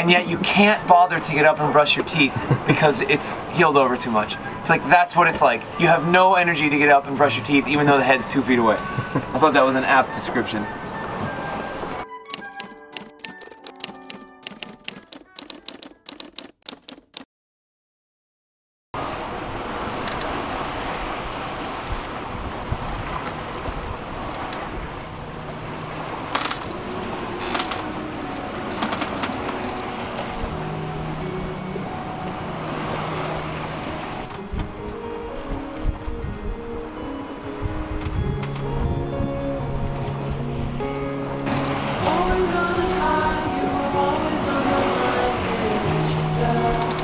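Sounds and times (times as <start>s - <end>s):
rushing water: 0.0s - 14.6s, 19.0s - 35.8s, 40.4s - 47.0s
wind: 0.0s - 15.0s, 19.0s - 47.0s
music with slow held notes: 10.1s - 15.0s, 25.0s - 47.0s.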